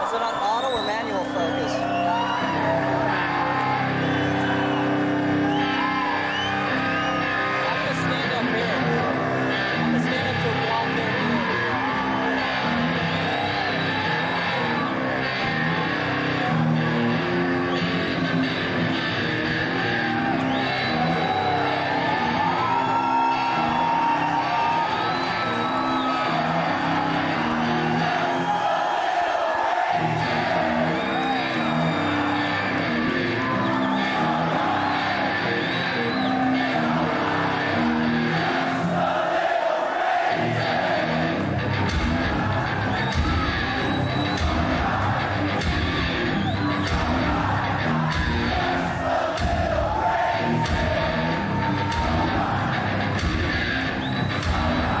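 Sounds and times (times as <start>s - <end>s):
heavy metal band playing live: 2.4s - 28.4s, 30.0s - 38.9s, 40.4s - 55.0s.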